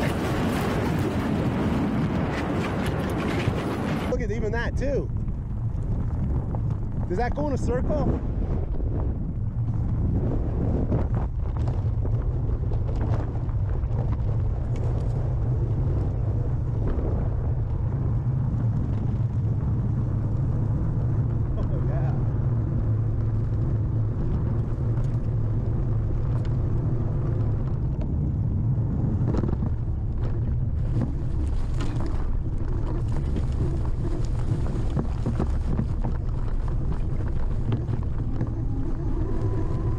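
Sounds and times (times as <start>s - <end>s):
wind on microphone: 0.0s - 39.9s.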